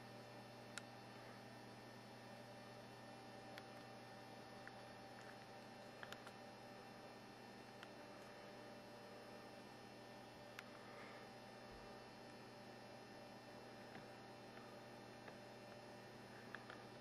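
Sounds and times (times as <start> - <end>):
low electrical hum: 0.0 - 17.0.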